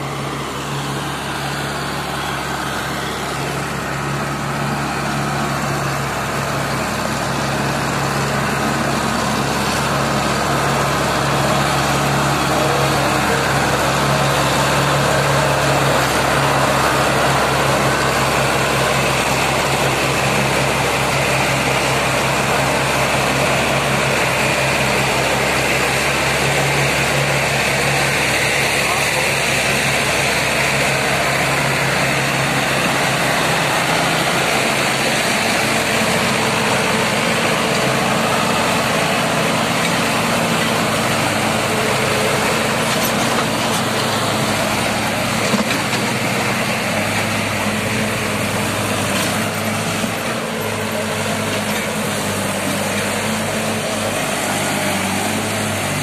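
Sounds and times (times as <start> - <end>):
tractor diesel engines under load: 0.0 - 56.0.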